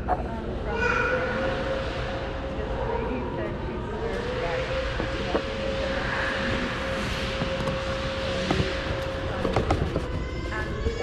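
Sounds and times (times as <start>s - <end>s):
noisy indoor hall background: 0.0s - 11.0s
steady hum: 0.0s - 11.0s.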